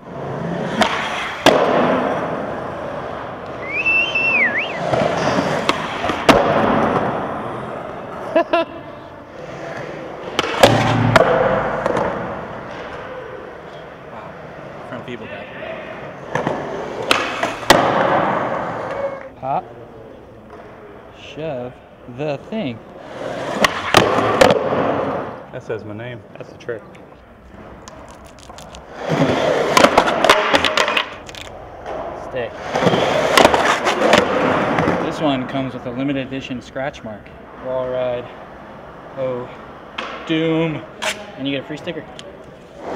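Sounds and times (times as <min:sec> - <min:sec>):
skateboard wheels rolling on concrete: 0:00.0 - 0:22.0, 0:22.6 - 0:25.5, 0:26.2 - 0:42.9
skateboard clacks and landings: 0:00.1 - 0:03.6, 0:04.8 - 0:07.8, 0:09.5 - 0:13.1, 0:16.2 - 0:19.1, 0:23.3 - 0:25.3, 0:28.8 - 0:31.2, 0:31.8 - 0:35.0.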